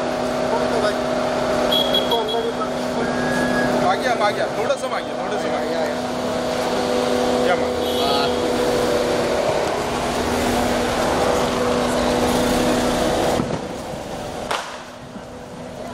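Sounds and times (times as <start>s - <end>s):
car engine hum: 0.0s - 15.9s
voices calling out: 1.6s - 14.5s.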